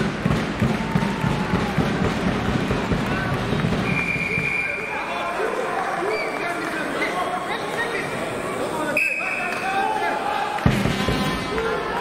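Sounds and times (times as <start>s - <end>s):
voices in a large hall: 0.0s - 12.0s
referee's whistle: 3.8s - 5.0s, 8.9s - 9.6s.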